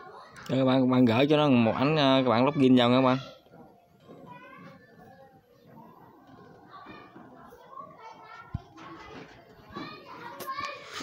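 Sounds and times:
children talking and playing: 0:00.0 - 0:11.0.

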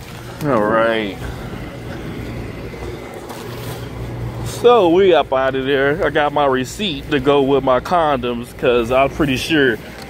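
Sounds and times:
constant low hum: 0:00.0 - 0:10.0
vehicle engines idling: 0:00.0 - 0:10.0.

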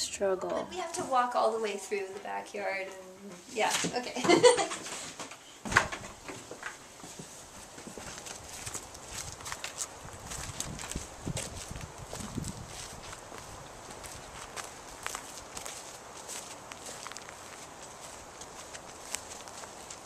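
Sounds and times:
footsteps on dirt and grass: 0:06.0 - 0:20.0.

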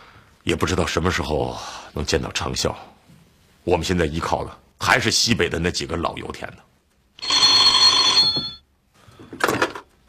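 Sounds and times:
telephone bell ringing: 0:07.2 - 0:08.7.

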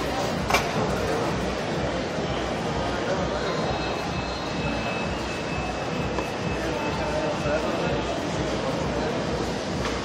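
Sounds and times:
indistinct background chatter: 0:00.0 - 0:10.0.

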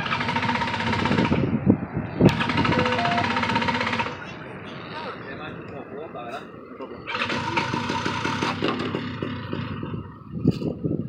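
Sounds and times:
paramotor engine buzzing: 0:02.3 - 0:04.2.

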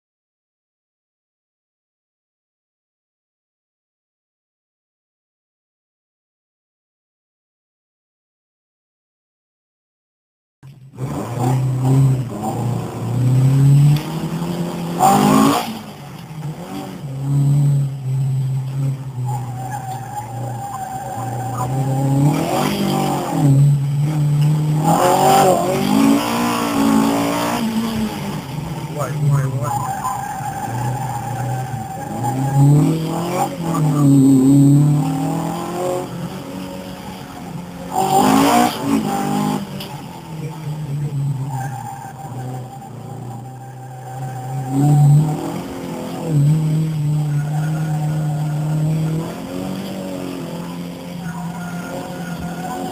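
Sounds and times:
racing car engine revving: 0:10.7 - 0:52.9
tyres squealing: 0:19.2 - 0:23.0, 0:28.8 - 0:34.4.

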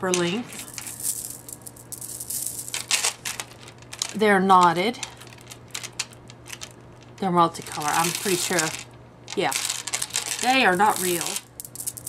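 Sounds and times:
beads clicking and rattling: 0:00.1 - 0:12.0.

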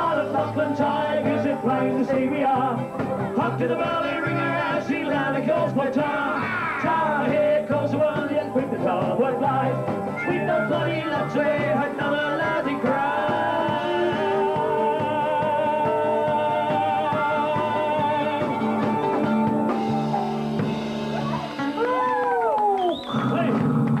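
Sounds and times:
folk band with mandolin and guitar: 0:01.2 - 0:05.7
whoops and cheering: 0:21.2 - 0:23.4.

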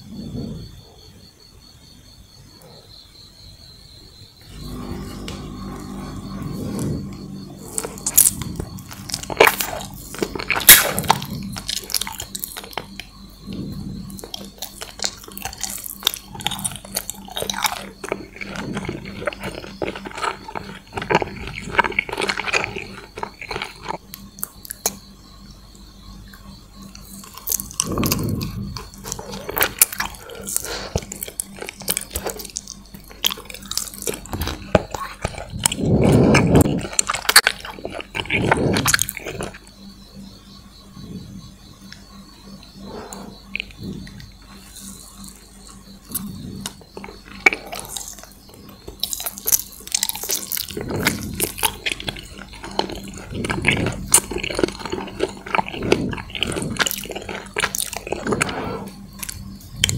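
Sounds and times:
chewing: 0:04.4 - 0:59.9
mouth licking and sucking candy: 0:06.6 - 0:25.0, 0:26.9 - 0:39.7, 0:46.0 - 0:59.9.

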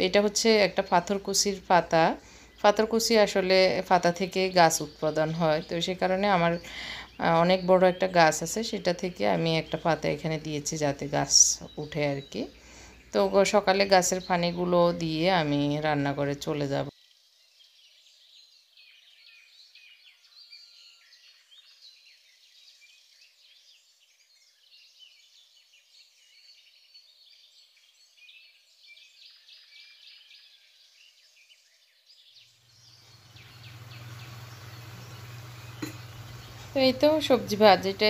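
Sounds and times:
birds chirping: 0:00.0 - 0:38.0
low hum with hiss: 0:32.6 - 0:38.0.

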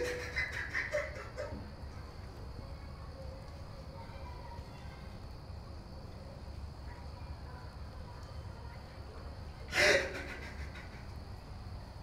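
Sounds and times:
gasping sob: 0:09.7 - 0:10.6
man crying: 0:09.7 - 0:10.8.

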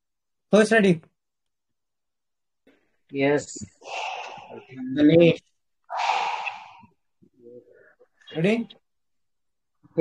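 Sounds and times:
breathy exhale into microphone: 0:03.8 - 0:04.7, 0:05.9 - 0:07.0.

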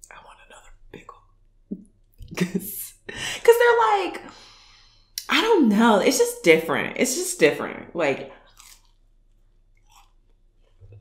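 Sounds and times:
woman whispering: 0:00.0 - 0:01.3.

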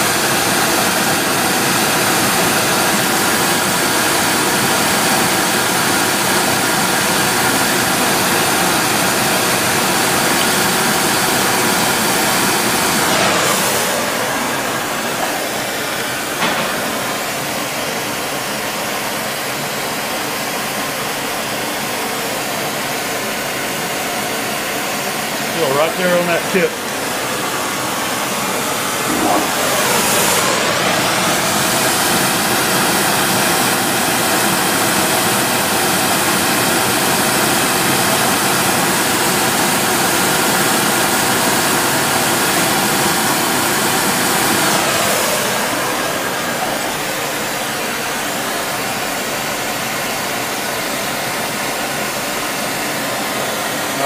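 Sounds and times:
spray torch hissing: 0:07.0 - 0:17.7, 0:26.0 - 0:32.4.

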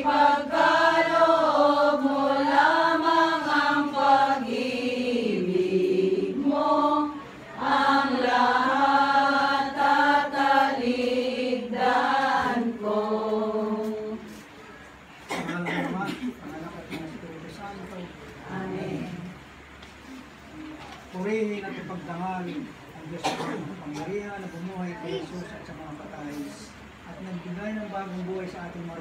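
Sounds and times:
women singing a hymn: 0:00.0 - 0:14.5, 0:18.4 - 0:19.4.

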